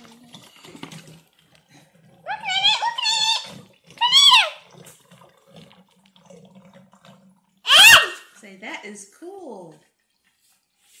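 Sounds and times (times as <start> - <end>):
water trickling and gurgling: 0.0 - 7.8
child squealing: 2.3 - 4.6, 7.7 - 8.2.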